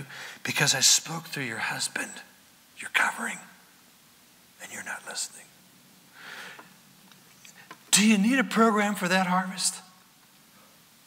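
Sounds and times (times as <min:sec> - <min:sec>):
man breathing: 0:00.0 - 0:00.4, 0:06.1 - 0:06.8
man speaking: 0:00.4 - 0:03.6, 0:04.6 - 0:05.5, 0:07.9 - 0:09.9.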